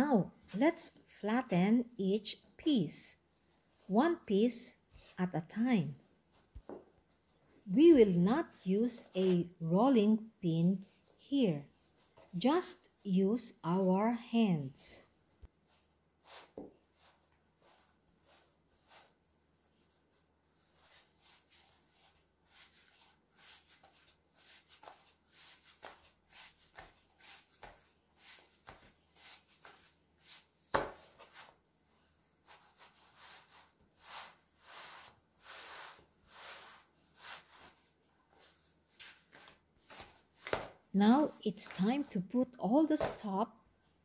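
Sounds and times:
hands rubbing and patting dough: 0:15.2 - 0:43.4.

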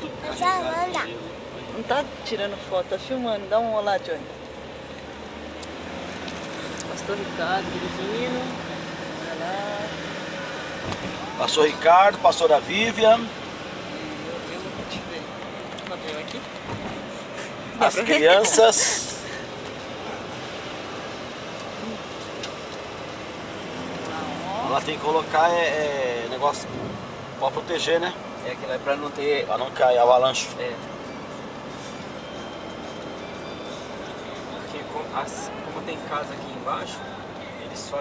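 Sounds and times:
car road and engine noise: 0:00.0 - 0:38.0.

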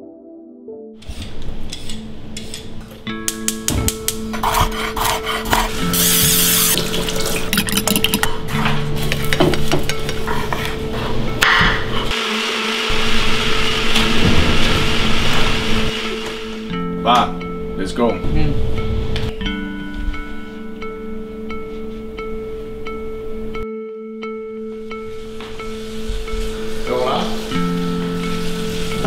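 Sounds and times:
clattering food preparation: 0:01.2 - 0:12.1
blender running: 0:12.1 - 0:16.7.

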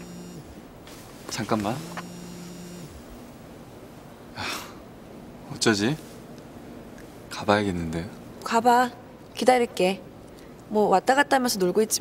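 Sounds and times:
mobile phone vibrating: 0:00.0 - 0:00.6, 0:01.8 - 0:03.0
faint hum: 0:00.0 - 0:12.0.

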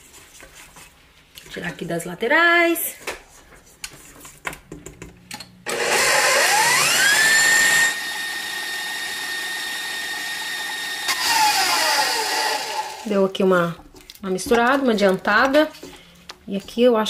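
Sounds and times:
stand mixer motor whine: 0:05.7 - 0:13.0.

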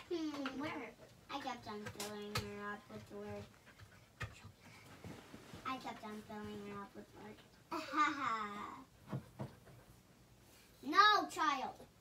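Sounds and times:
child's voice: 0:00.0 - 0:03.5, 0:05.6 - 0:08.9, 0:10.8 - 0:12.0
dog panting: 0:02.8 - 0:05.4.

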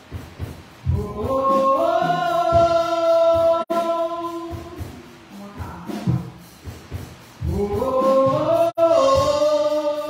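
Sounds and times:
gospel singing voice: 0:00.8 - 0:06.4, 0:07.4 - 0:10.0.

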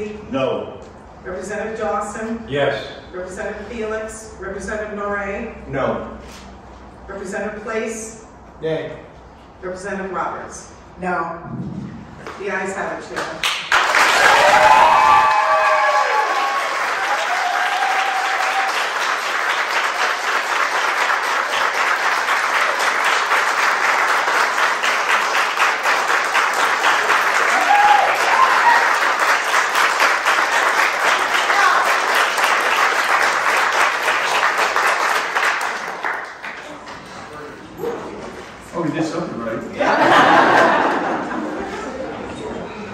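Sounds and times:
crowd applauding: 0:13.4 - 0:37.0.

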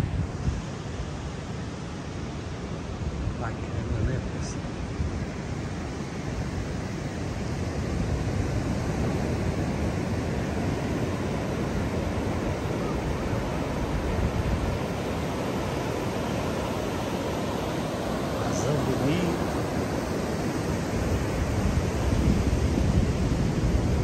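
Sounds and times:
ocean surf breaking on beach: 0:00.0 - 0:24.0.

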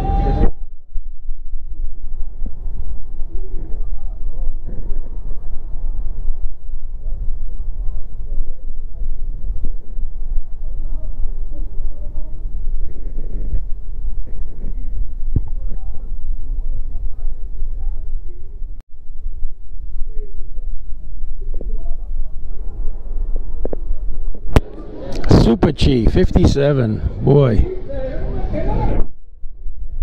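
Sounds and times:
low rumble: 0:00.0 - 0:30.0
faint chatter of voices: 0:01.8 - 0:18.8, 0:19.4 - 0:30.0.

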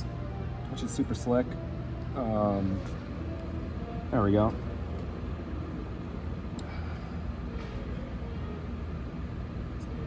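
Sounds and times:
ventilation rumble: 0:00.0 - 0:10.0.

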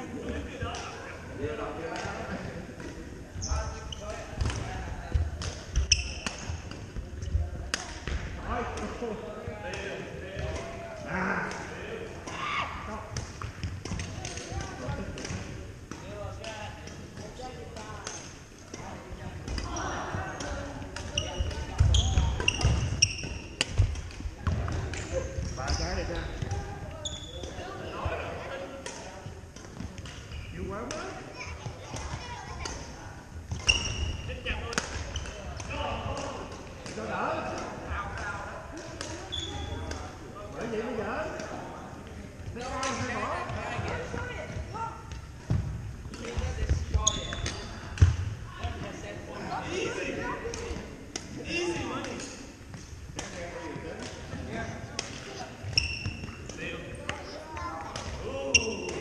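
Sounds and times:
players' voices: 0:00.0 - 0:59.0
sneaker squeaks on wooden floor: 0:05.7 - 0:06.5, 0:21.1 - 0:23.6, 0:25.4 - 0:27.6, 0:30.3 - 0:30.6, 0:33.5 - 0:34.3, 0:39.2 - 0:39.8, 0:46.7 - 0:48.1, 0:55.6 - 0:56.5, 0:58.4 - 0:59.0.

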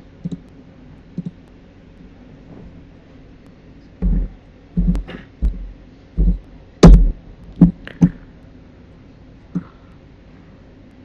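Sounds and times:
computer mouse clicks: 0:00.2 - 0:00.5, 0:01.2 - 0:01.4.

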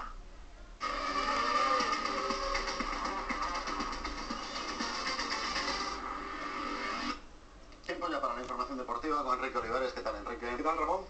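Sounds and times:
news jingle on television speaker: 0:00.8 - 0:07.2.

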